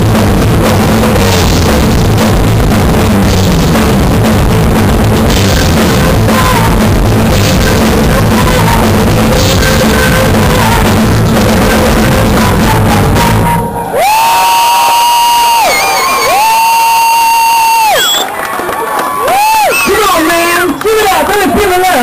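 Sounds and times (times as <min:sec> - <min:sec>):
rock band playing loud: 0:00.0 - 0:14.2
singer wailing unaccompanied: 0:05.6 - 0:14.3.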